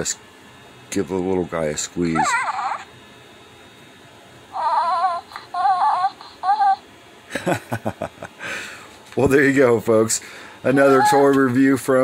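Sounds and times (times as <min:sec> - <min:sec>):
toy baby cooing: 0:02.2 - 0:02.9, 0:04.5 - 0:06.8, 0:10.7 - 0:11.3.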